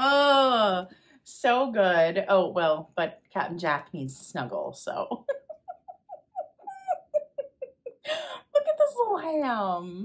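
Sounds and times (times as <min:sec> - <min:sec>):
woman giggling: 0:05.0 - 0:08.6.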